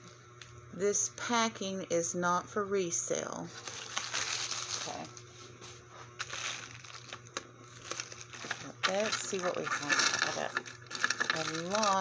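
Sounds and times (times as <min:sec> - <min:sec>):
padded envelope crinkling: 0:03.5 - 0:05.2, 0:06.1 - 0:12.0.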